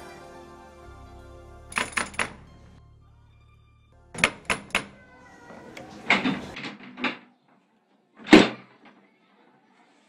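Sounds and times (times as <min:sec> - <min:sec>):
metal door bolt drawn back: 0:01.7 - 0:02.4, 0:04.2 - 0:05.0, 0:08.2 - 0:09.0
door pulled open: 0:04.2 - 0:07.3, 0:08.2 - 0:09.0.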